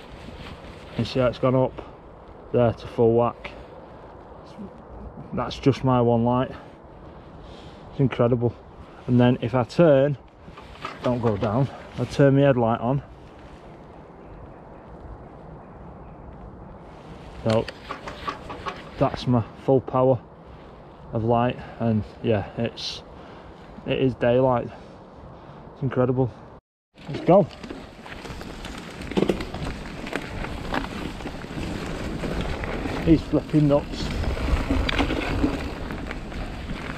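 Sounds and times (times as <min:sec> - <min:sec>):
bike tyres on dirt: 0:00.0 - 0:04.4, 0:05.5 - 0:24.8, 0:27.0 - 0:36.9
bike rattling over bumps: 0:10.4 - 0:12.4, 0:17.4 - 0:19.3, 0:27.0 - 0:36.9
wind on microphone: 0:29.1 - 0:36.9.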